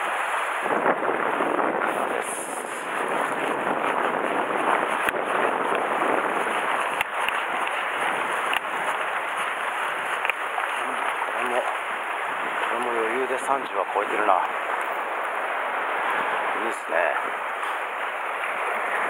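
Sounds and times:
surf washing against rocks: 0:00.0 - 0:19.0
wind on microphone: 0:00.0 - 0:19.0.

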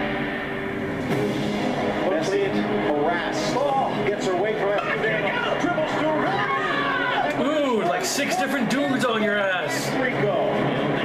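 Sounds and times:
stadium crowd noise: 0:00.0 - 0:11.0
commentator talking: 0:07.3 - 0:10.6.

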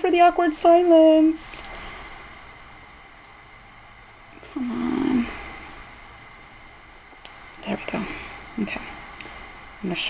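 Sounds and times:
faint room hiss: 0:00.0 - 0:10.0
woman humming: 0:04.4 - 0:05.4.

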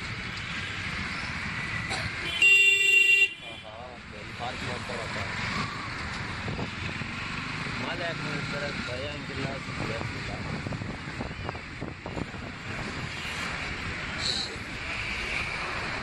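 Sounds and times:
road and wind noise: 0:00.0 - 0:16.0
vehicle horn blast: 0:02.2 - 0:03.7.

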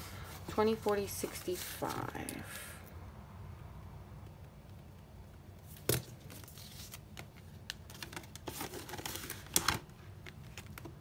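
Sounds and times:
paper pages shuffling and flipping: 0:00.1 - 0:02.4, 0:05.6 - 0:11.0.

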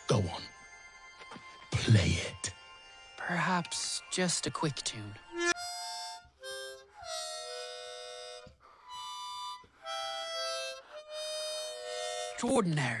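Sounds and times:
harmonica playing chords: 0:05.2 - 0:12.6.

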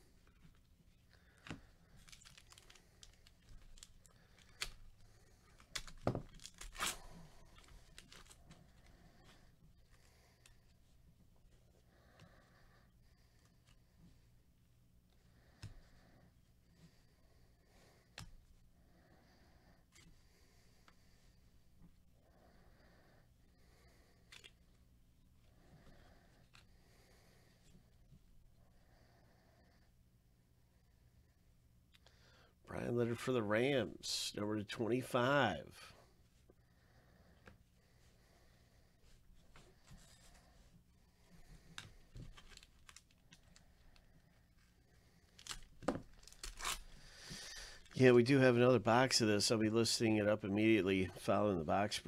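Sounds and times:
foil pack tearing and crinkling: 0:02.0 - 0:04.8, 0:05.6 - 0:07.2, 0:45.3 - 0:47.0.

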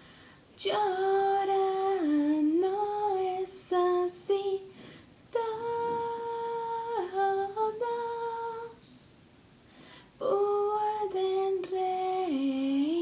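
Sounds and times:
woman singing unaccompanied: 0:00.6 - 0:09.1, 0:10.2 - 0:13.0.

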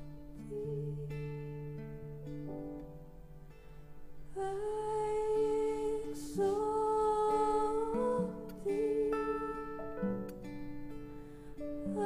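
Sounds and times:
soft guitar chords: 0:00.0 - 0:12.0
breath: 0:11.2 - 0:11.7.

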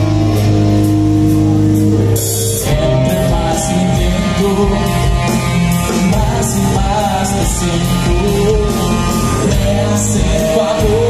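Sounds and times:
drums keeping time: 0:00.0 - 0:11.0
electric guitars and bass chord: 0:00.0 - 0:11.0.

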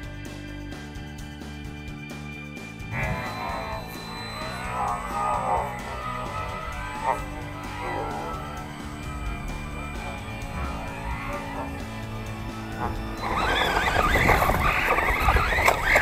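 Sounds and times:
background guitar music: 0:00.0 - 0:16.0
rc buggy driving over dirt: 0:02.6 - 0:16.0.

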